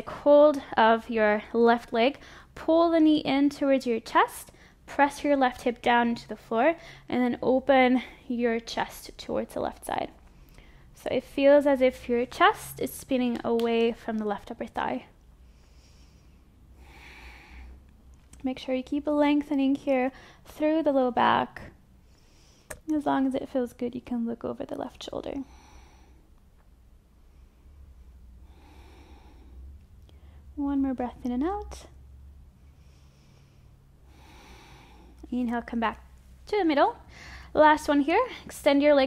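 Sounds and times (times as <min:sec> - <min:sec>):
low room hum: 0:00.0 - 0:39.0
woman breathing softly: 0:02.2 - 0:02.6, 0:06.8 - 0:07.1, 0:10.2 - 0:11.0, 0:15.4 - 0:17.9, 0:20.1 - 0:20.4, 0:22.0 - 0:22.7, 0:25.4 - 0:26.4, 0:27.2 - 0:30.5, 0:32.6 - 0:35.2, 0:37.0 - 0:37.6.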